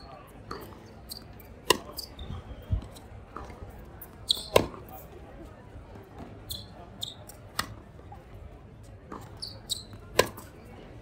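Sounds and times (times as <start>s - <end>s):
racket hitting tennis ball: 0.5s - 2.1s, 2.8s - 4.9s, 9.1s - 10.5s
tennis ball bouncing: 0.5s - 2.1s, 2.8s - 5.0s, 9.1s - 10.5s.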